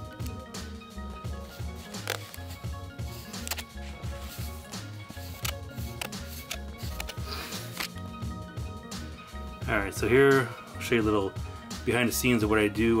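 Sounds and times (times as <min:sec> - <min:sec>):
background music with steady beat: 0:00.0 - 0:13.0.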